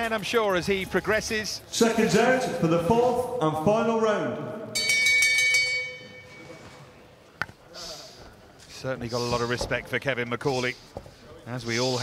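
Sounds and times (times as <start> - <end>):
boxing bell ringing: 4.8 - 6.8.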